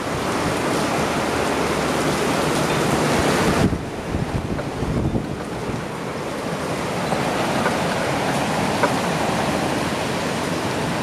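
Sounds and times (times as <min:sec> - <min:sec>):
heavy rain: 0:00.0 - 0:11.0
strong storm wind: 0:00.0 - 0:11.0
wind buffeting microphone: 0:00.0 - 0:11.0.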